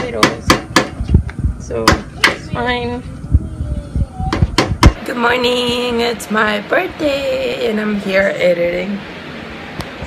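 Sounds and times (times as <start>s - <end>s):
sharp knocks: 0.0s - 1.0s, 4.3s - 5.0s.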